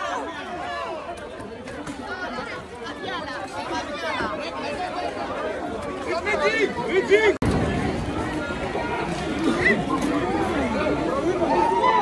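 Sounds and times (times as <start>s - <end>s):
crowd talking and shouting: 0.0s - 12.0s.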